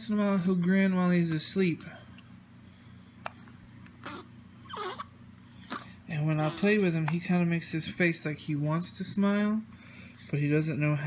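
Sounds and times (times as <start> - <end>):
steady low hum: 0.0 - 11.0
baby whimpering: 4.0 - 6.8.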